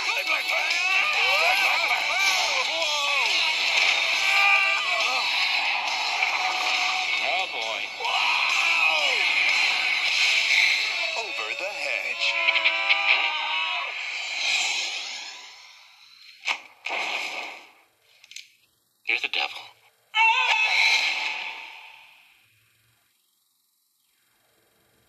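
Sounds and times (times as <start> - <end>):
trailer music with singing: 1.8 - 11.4.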